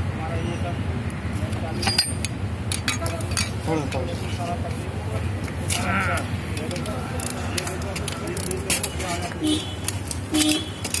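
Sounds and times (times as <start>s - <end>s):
people talking: 0.1s - 2.1s, 2.8s - 9.7s.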